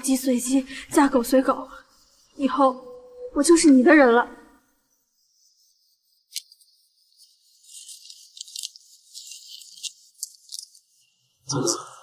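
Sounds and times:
paper rustling and crinkling: 0:06.3 - 0:10.8.

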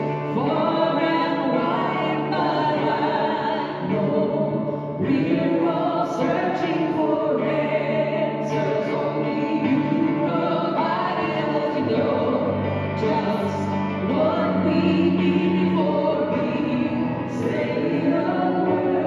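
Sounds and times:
other voices singing: 0:00.0 - 0:19.0.

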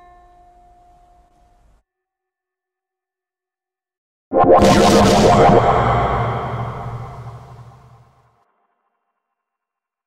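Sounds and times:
loud sound effect of pitched tones: 0:04.3 - 0:08.0.

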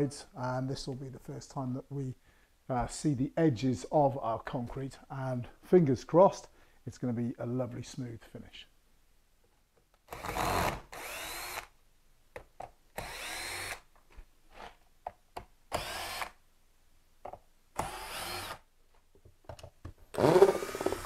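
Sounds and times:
cordless drill motor spinning: 0:10.1 - 0:11.7, 0:13.0 - 0:13.8, 0:15.7 - 0:16.4, 0:17.8 - 0:18.6, 0:20.1 - 0:21.0.

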